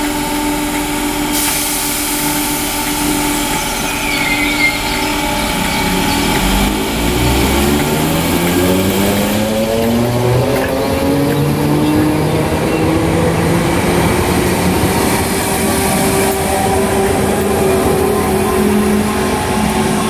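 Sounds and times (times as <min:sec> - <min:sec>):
electric train motors whining: 0:00.1 - 0:20.0.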